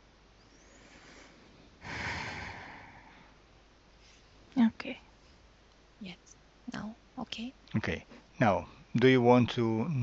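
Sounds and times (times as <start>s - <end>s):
person breathing out forcefully: 0.7s - 3.4s.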